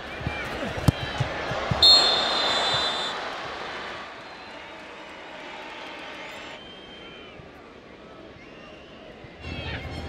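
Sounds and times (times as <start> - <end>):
stadium crowd cheering: 0.0 - 10.0
thin high whistle-like tone: 1.8 - 3.1.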